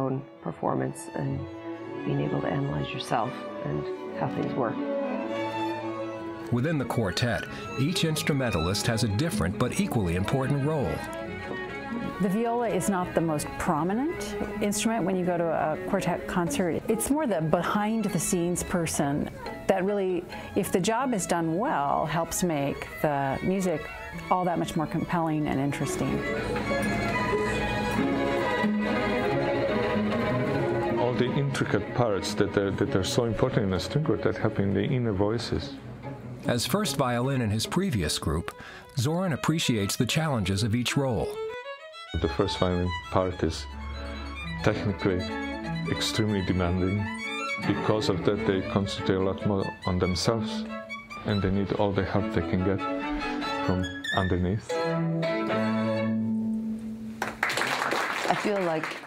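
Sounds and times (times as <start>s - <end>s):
string quartet playing: 0.0s - 57.3s.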